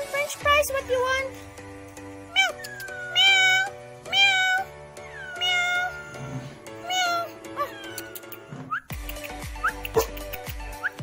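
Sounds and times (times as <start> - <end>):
background music: 0.0 - 11.0
kitten meowing: 2.3 - 6.2, 6.8 - 8.5.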